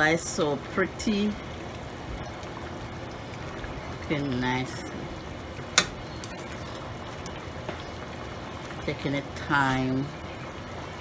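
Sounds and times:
pot bubbling: 0.0 - 11.0.

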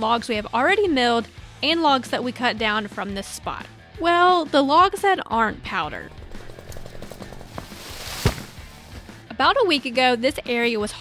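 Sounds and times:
branches swishing through foliage: 6.4 - 9.2
tree trunk thudding on ground: 6.5 - 9.2.

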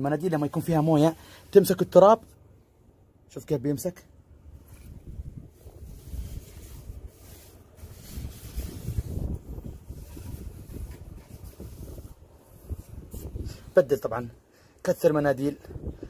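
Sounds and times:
wind buffeting microphone: 4.7 - 13.7, 15.7 - 16.0.

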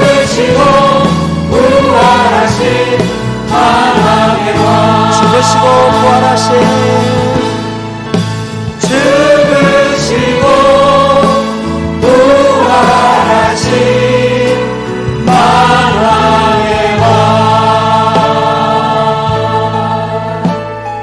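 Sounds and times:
voices singing praise song: 0.0 - 20.8
instrumental accompaniment: 0.0 - 21.0.

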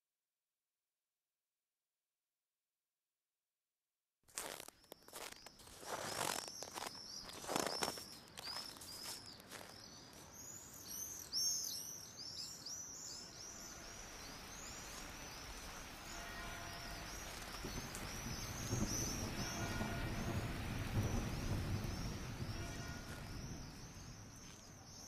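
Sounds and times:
birds chirping: 5.0 - 25.0
rain hiss: 12.9 - 25.0.

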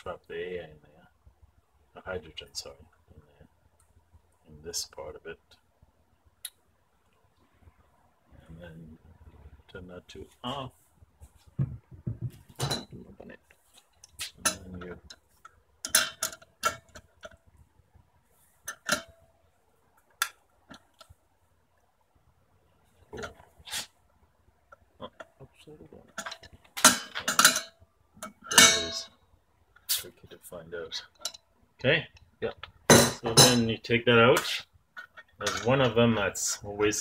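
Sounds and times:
wrench clinking on metal fittings: 15.8 - 17.4, 26.2 - 29.1.

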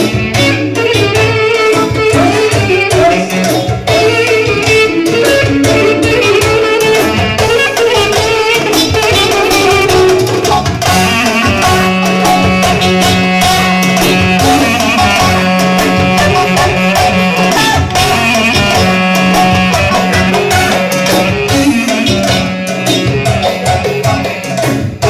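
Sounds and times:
clarinet melody: 0.0 - 25.0
steady drum beat: 0.0 - 25.0.

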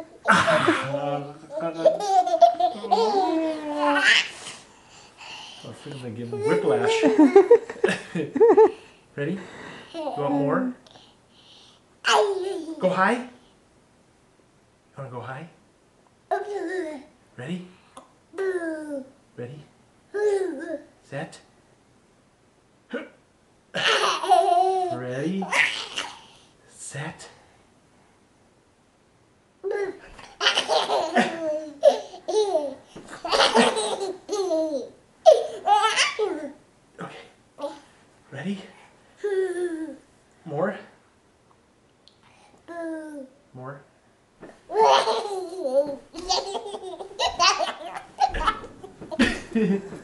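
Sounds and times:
toddler laughing: 0.0 - 4.4, 6.2 - 7.6, 23.8 - 26.2, 29.7 - 36.6, 44.7 - 49.7.

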